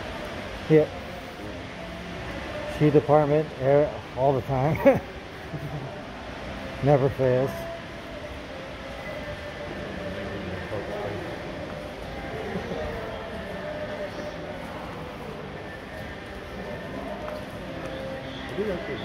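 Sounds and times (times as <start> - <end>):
constant background hum: 0.0 - 19.0
murmur of distant voices: 0.0 - 19.0.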